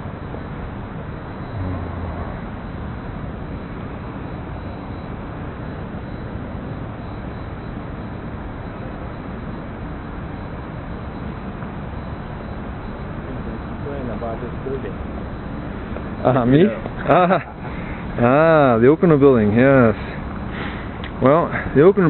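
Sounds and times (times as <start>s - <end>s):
low rumble of traffic: 0.0s - 22.0s.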